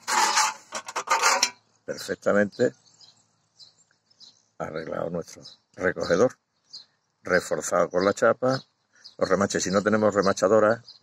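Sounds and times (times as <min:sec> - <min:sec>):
rasping scrapes: 0:00.0 - 0:01.6.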